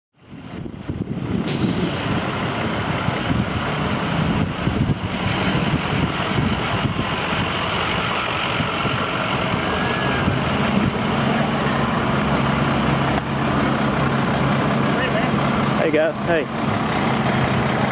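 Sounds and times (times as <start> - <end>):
heavy truck engines idling: 0.2 - 17.9.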